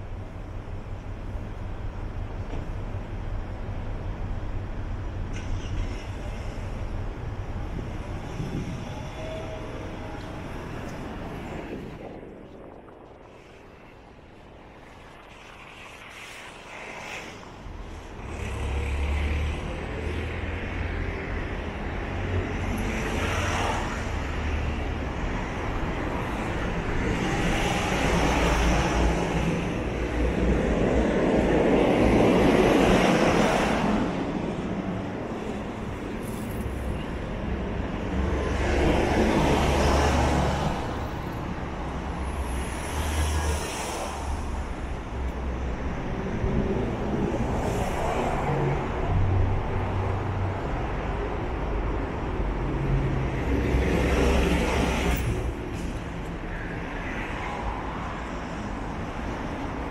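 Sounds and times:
cars passing: 0.0 - 59.9.

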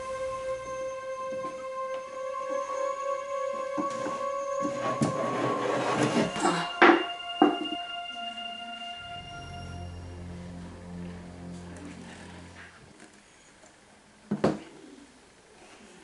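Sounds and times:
background music of held notes: 0.0 - 12.9.

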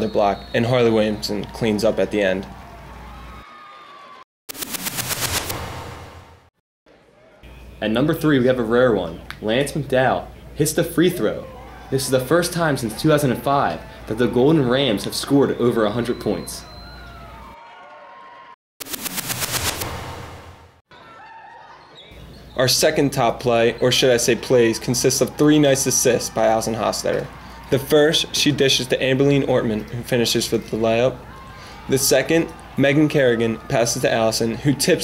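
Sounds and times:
crowd cheering and clapping: 1.4 - 4.3, 16.8 - 18.6, 20.0 - 22.0, 24.3 - 35.0.

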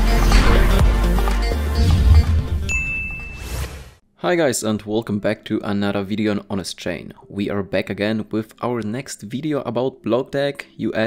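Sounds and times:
intro music with deep bass: 0.0 - 2.7
bright ding: 2.7 - 3.6.

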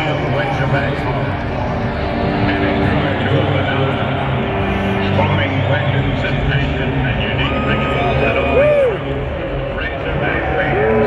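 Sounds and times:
crowd din: 0.0 - 11.0
sustained low music notes: 0.0 - 11.0
voice over public address: 0.0 - 11.0.

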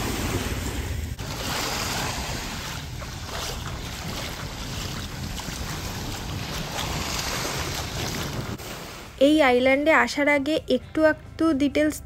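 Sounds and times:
wind rumbling on microphone: 0.0 - 8.6
surf washing onto beach: 0.0 - 9.1.

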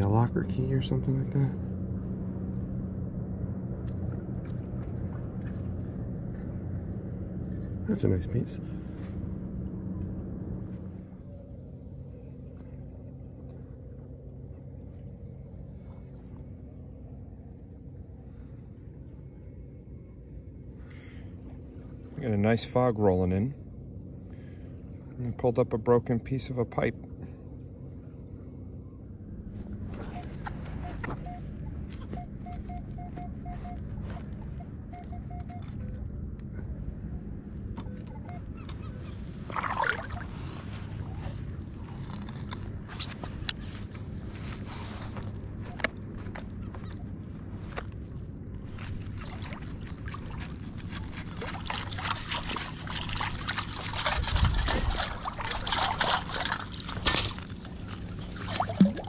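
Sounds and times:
water sloshing and splashing: 3.7 - 7.8, 37.7 - 59.0
metal detector beeps: 30.0 - 36.0.

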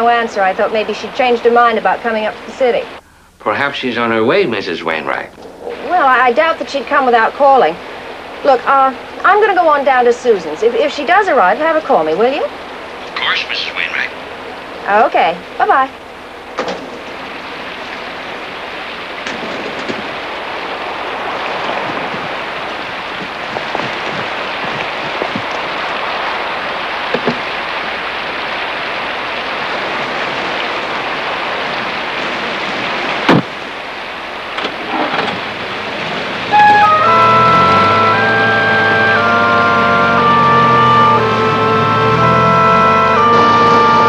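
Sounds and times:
steady rain falling: 0.0 - 44.0
small knocks: 27.1 - 27.4
sharp knock: 33.3 - 33.5
suspense music of held tones: 36.5 - 44.0.

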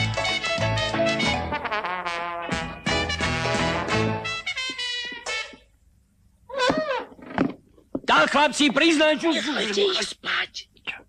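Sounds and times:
brass swing music: 0.0 - 5.8.

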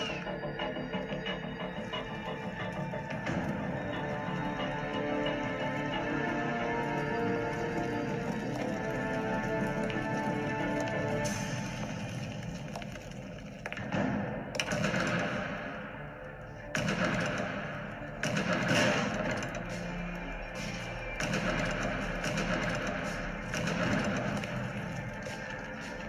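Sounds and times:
film background score: 0.0 - 26.0.

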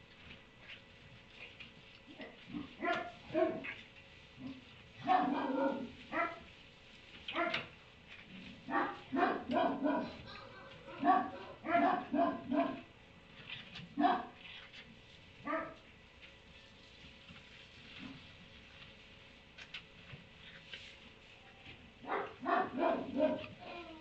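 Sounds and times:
dog barking and yipping: 2.6 - 3.8, 4.4 - 6.5, 7.3 - 7.7, 8.7 - 12.9, 14.0 - 14.3, 15.5 - 15.8, 22.0 - 23.6.

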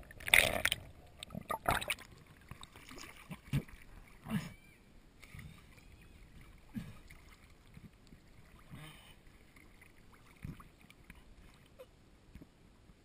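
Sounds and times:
muffled water sloshing: 0.0 - 12.6.

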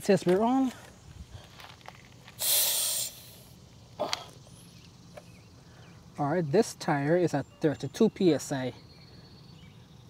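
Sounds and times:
air hissing from tire valve: 2.2 - 4.8.

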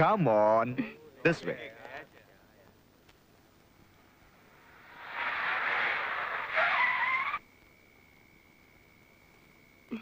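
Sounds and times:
car tyre noise: 4.4 - 7.4
tyre squeal: 4.8 - 7.4.

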